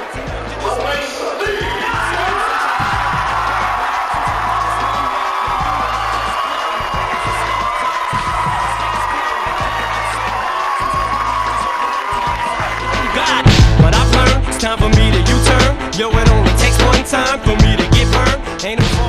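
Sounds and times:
music with deep beat: 0.0s - 1.0s, 1.6s - 19.0s
faint crowd cheering: 0.0s - 19.0s.

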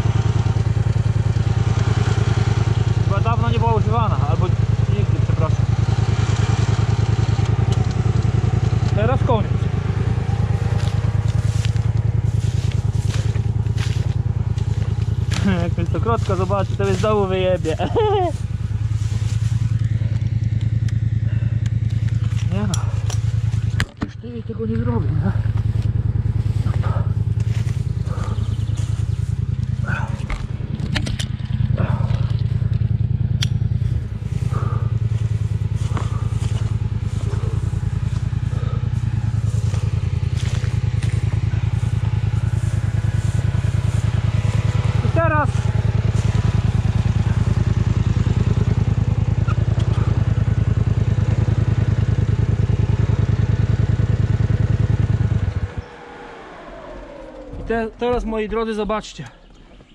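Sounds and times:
quad bike engine idling: 0.0s - 59.9s.

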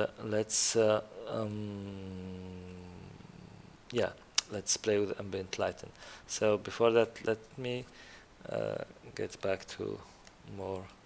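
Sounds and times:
man speaking: 0.0s - 3.1s, 3.9s - 11.0s
man humming hesitation: 1.2s - 3.8s.

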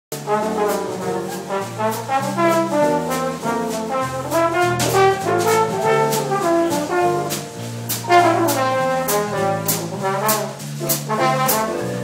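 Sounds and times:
drum kit: 0.1s - 12.0s
trombone: 0.1s - 12.0s.

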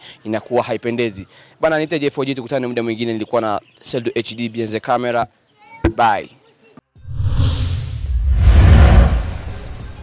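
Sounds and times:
deep whoosh with low rumble: 7.0s - 9.8s.

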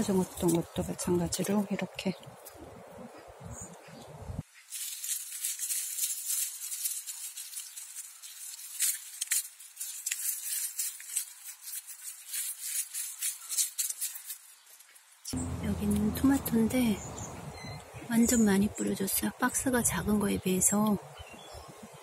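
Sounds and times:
soil being stirred: 4.6s - 14.9s
plastic glove crinkling: 4.6s - 15.3s.

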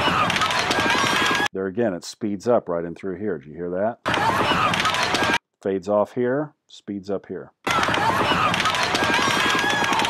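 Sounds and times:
raised voices: 0.0s - 1.5s, 4.0s - 5.4s, 7.7s - 10.0s.

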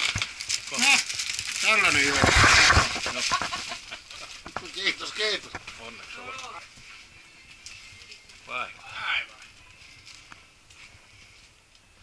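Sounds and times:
rustling: 0.0s - 12.0s
indistinct voices: 4.4s - 10.5s.

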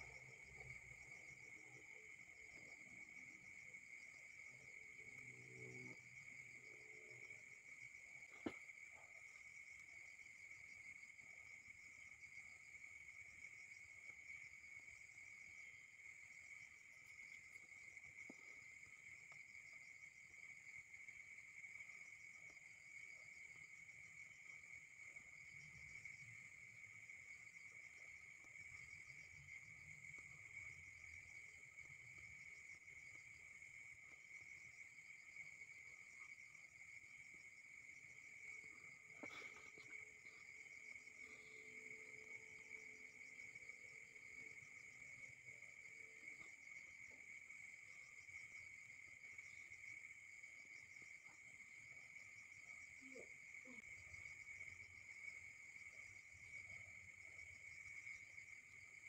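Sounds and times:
insects chorus pulsing: 0.0s - 59.0s.

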